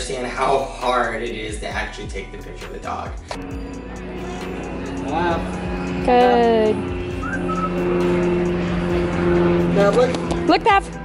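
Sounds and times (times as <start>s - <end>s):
held low notes: 0.0s - 11.0s
rising high tone: 3.4s - 11.0s.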